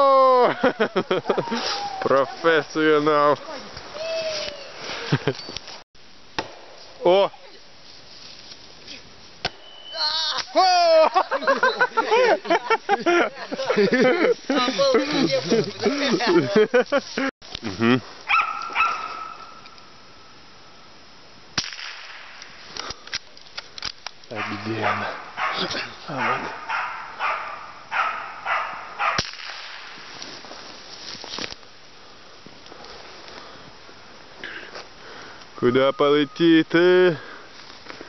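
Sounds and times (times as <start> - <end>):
rifle shot: 6.4 - 6.8, 21.6 - 22.4, 29.1 - 30.0.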